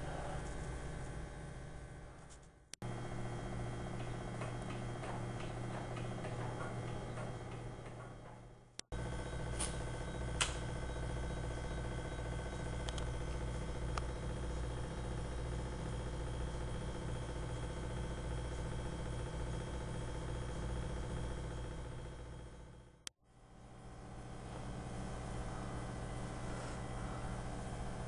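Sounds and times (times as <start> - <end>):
steady low hum: 0.0 - 28.0.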